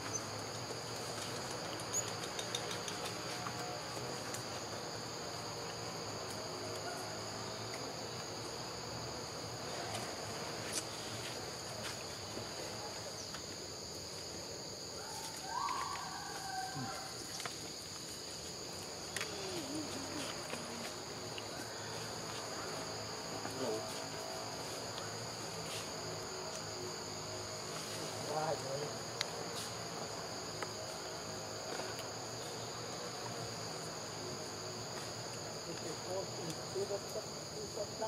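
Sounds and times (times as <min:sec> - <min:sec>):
high-pitched insect chorus: 0:00.0 - 0:38.0.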